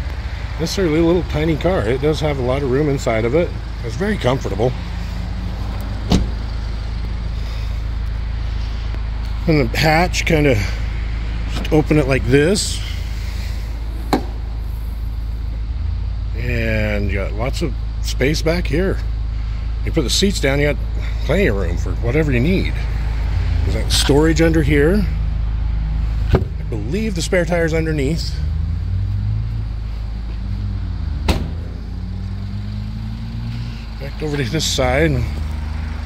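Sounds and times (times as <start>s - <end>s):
car engine idling: 0.0s - 36.0s
steady low hum: 0.0s - 36.0s
car door swinging open: 6.0s - 6.4s, 26.3s - 26.6s, 31.2s - 31.7s
car door latch click: 31.3s - 31.6s.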